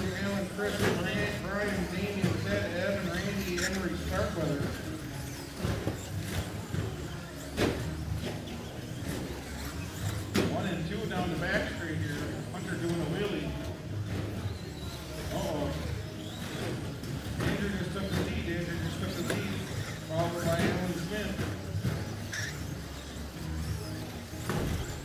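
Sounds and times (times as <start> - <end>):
background voices talking: 0.0 - 25.0
radio-controlled trucks running: 0.0 - 25.0.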